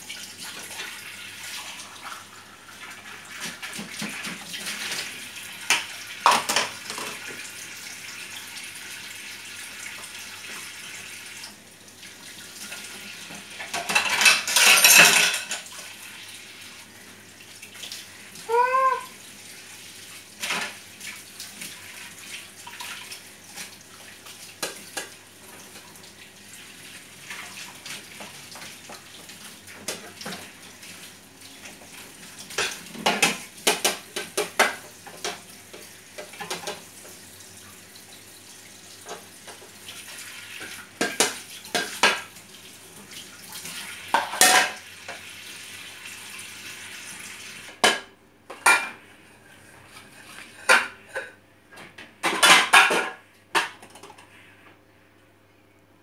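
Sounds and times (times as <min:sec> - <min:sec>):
tap water running into sink: 0:00.0 - 0:48.7
dishes clinking: 0:13.7 - 0:15.7, 0:44.1 - 0:44.8, 0:52.2 - 0:54.2.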